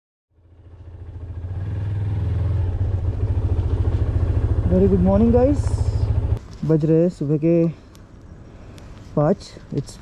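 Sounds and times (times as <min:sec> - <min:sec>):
motorcycle engine idling: 0:00.3 - 0:06.4.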